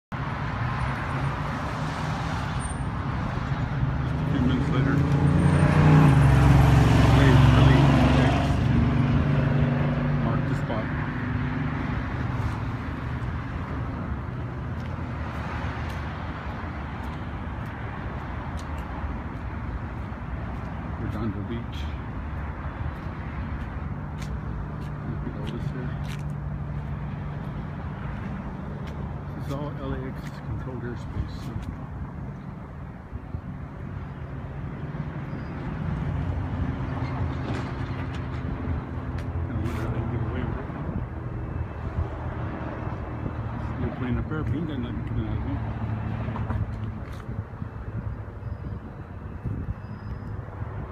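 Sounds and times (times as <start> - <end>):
engine hum: 0.1 - 50.9
traffic rumble: 0.1 - 50.9.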